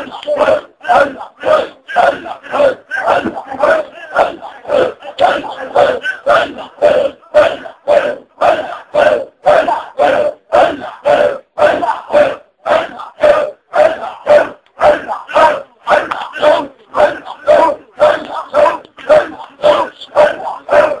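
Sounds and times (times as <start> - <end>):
men chanting rhythmically: 0.0 - 21.0.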